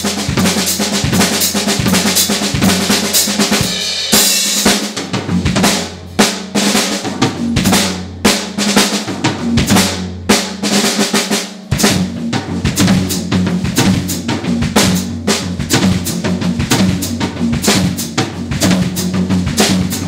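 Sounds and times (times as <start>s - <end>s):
drum kit playing: 0.0s - 20.0s
cymbal crash: 3.6s - 4.6s.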